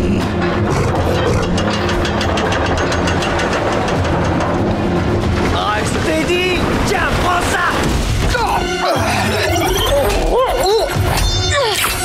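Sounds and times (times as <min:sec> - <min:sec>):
cartoon chase music: 0:07.3 - 0:12.0.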